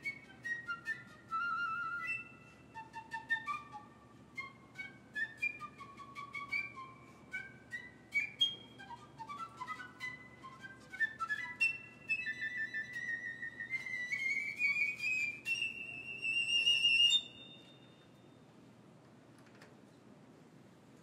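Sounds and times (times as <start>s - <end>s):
piccolo playing quick notes: 0.0s - 17.8s.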